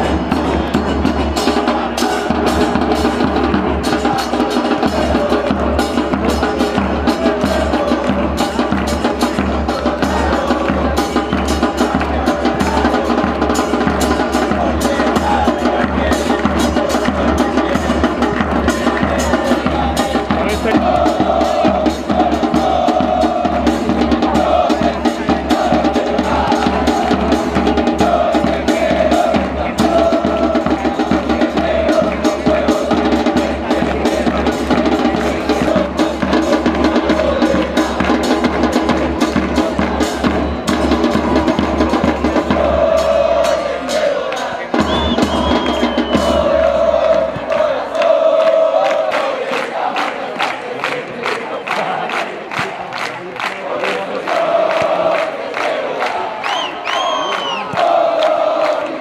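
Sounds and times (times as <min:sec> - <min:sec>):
bass drum beating: 0:00.0 - 0:43.7
crowd chanting: 0:00.0 - 0:59.0.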